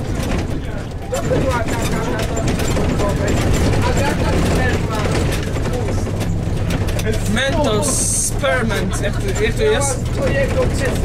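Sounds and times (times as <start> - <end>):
bus body rattles and clicks: 0.0 - 11.0
bus diesel engine running: 0.0 - 11.0.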